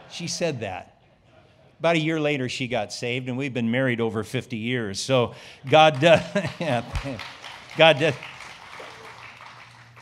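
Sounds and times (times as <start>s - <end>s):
light audience applause: 5.6s - 10.0s.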